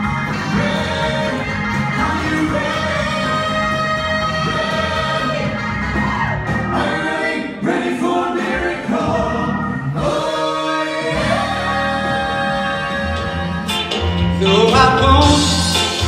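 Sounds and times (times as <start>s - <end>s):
backing music: 0.0s - 16.0s
male vocal quartet singing in harmony: 0.0s - 16.0s.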